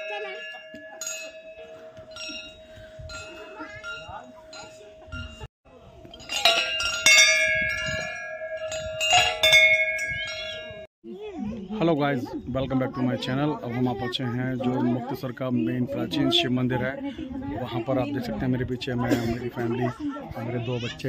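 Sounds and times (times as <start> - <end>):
loud bell clangs: 0.0 - 5.5, 6.1 - 10.9
metal temple bells ringing: 0.0 - 10.9.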